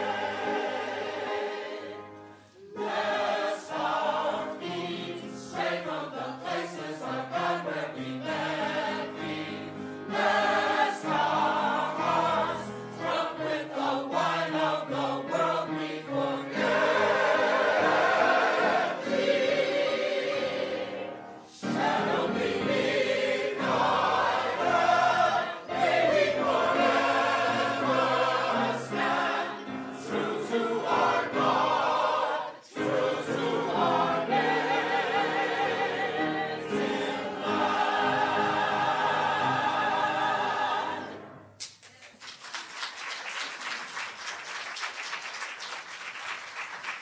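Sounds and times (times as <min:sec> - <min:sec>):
mixed choir singing: 0:00.0 - 0:41.4
piano: 0:00.0 - 0:41.7.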